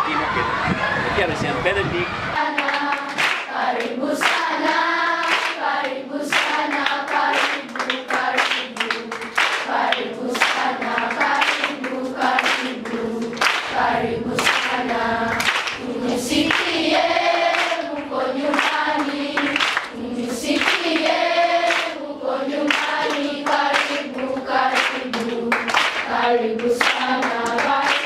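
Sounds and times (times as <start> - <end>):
children's choir singing: 2.2 - 28.0
rhythmic hand clapping: 2.4 - 28.0.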